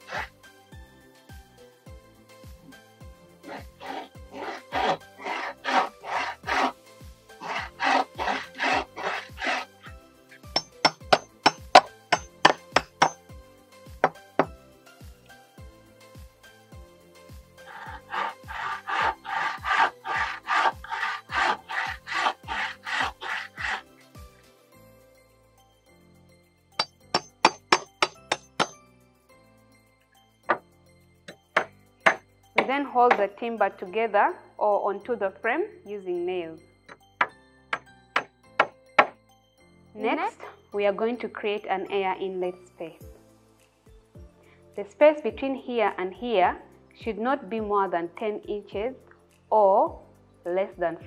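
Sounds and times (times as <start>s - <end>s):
bow saw rasping through timber: 0.0s - 0.4s, 3.4s - 13.2s, 17.6s - 24.2s, 31.6s - 33.3s
faint background music: 0.0s - 51.0s
sharp knocks: 31.6s - 33.2s.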